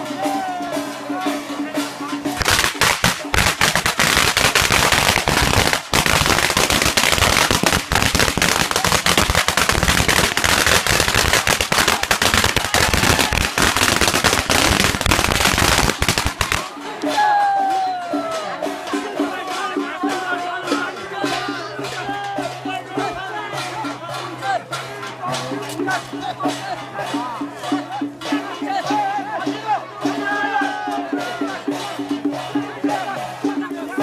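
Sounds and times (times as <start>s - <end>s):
music: 0.0s - 34.0s
firecrackers crackling: 2.3s - 16.8s.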